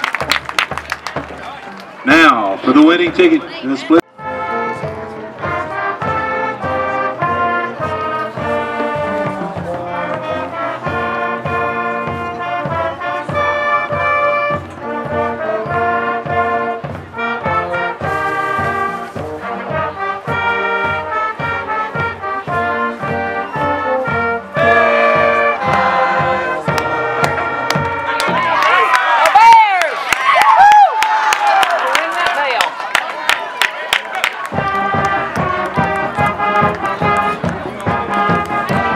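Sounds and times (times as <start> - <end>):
brass band playing: 0.0 - 30.4, 31.5 - 38.9
bass drum beat: 4.2 - 29.6, 34.4 - 38.9.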